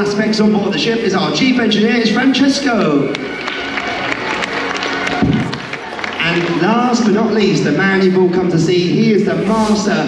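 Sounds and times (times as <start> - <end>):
music playing: 0.0 - 10.0
audience clapping: 2.6 - 7.4
cheering: 2.6 - 7.6.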